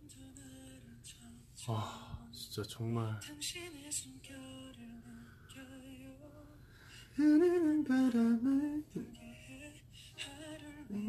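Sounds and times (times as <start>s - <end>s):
person humming a gentle melody: 7.2s - 11.0s.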